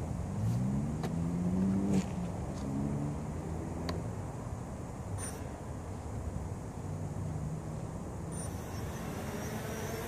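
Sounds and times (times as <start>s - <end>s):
drone motors humming: 8.2s - 10.0s.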